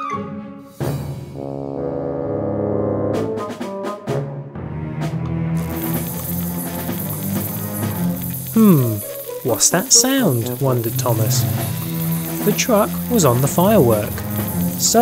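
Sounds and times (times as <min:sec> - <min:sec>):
timpani strokes: 0:00.7 - 0:09.4
brass chords: 0:01.0 - 0:06.2
sizzling fuse hiss: 0:05.6 - 0:15.0.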